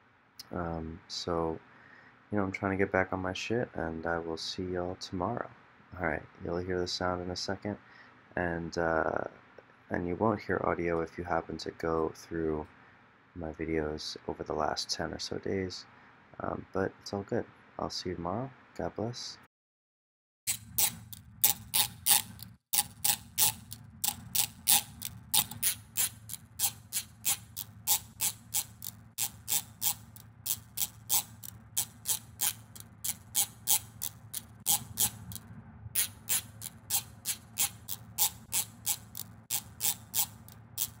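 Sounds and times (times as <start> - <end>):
faint low hum: 0.4 - 19.4, 20.5 - 41.0
plucked comb clicks: 20.5 - 35.4.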